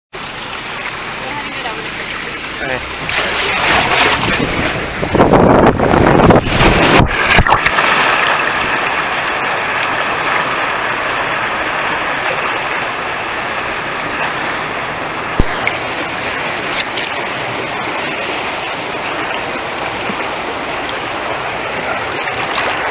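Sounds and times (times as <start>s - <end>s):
water rushing and splashing: 0.2s - 22.9s.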